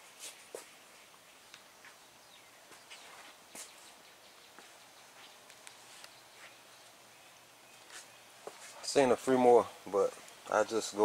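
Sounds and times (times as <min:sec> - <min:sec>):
soft ticks and rustles: 0:02.7 - 0:07.0.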